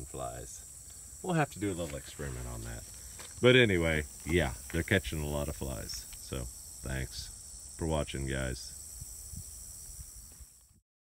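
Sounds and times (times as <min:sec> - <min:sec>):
high-pitched insect drone: 0:00.0 - 0:10.8.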